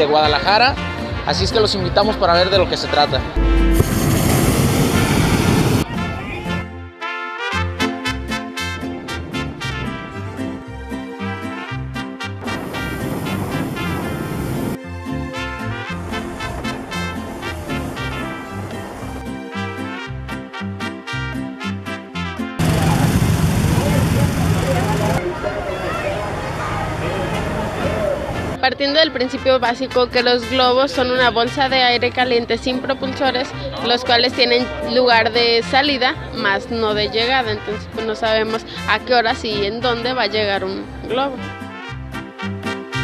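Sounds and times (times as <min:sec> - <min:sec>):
propane burner firing: 0:03.7 - 0:05.8, 0:22.6 - 0:25.2
crowd chatter: 0:05.7 - 0:06.8, 0:22.6 - 0:29.2, 0:30.7 - 0:38.5.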